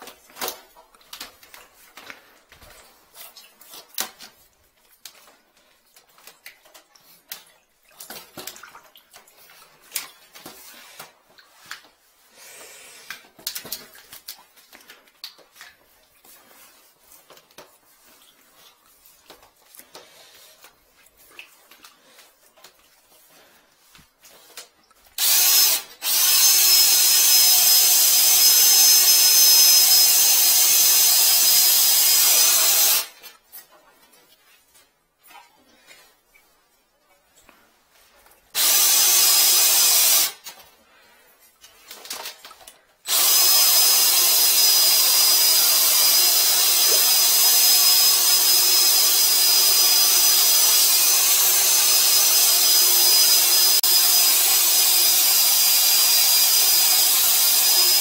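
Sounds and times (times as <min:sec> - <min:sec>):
drill motor whine: 0:25.2 - 0:33.1, 0:38.6 - 0:40.3, 0:43.1 - 0:58.0.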